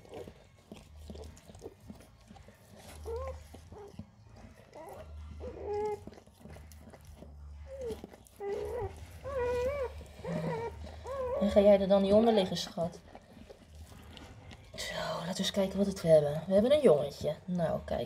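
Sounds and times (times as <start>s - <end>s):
dog whimpering: 0.0s - 13.3s.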